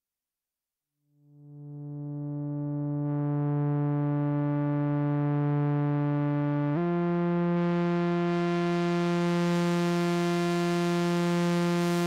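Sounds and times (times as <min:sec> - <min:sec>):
synthesizer pad low note: 0:01.5 - 0:12.0.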